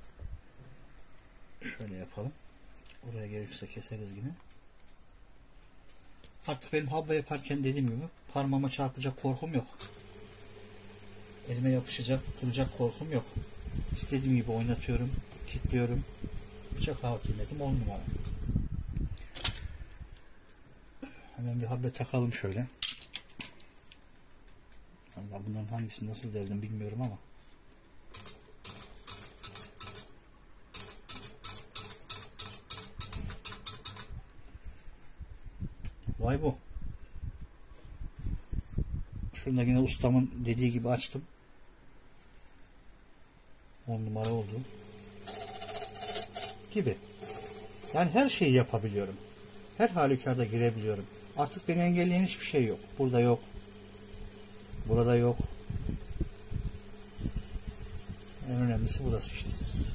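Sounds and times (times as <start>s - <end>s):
electric motor humming: 9.8s - 18.6s, 44.2s - 59.9s
small metallic clicks and scrapes: 28.1s - 30.1s, 30.7s - 34.2s, 45.2s - 48.1s.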